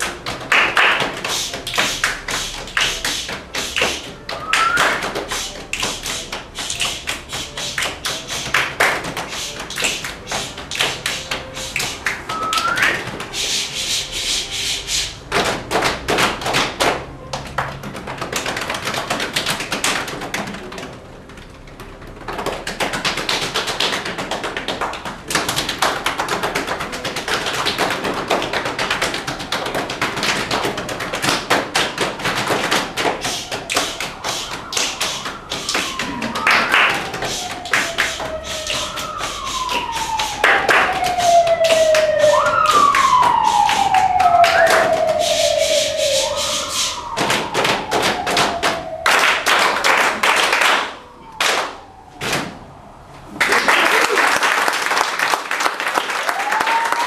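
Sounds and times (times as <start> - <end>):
body percussion claps and slaps: 0.0 - 21.0, 22.2 - 52.5.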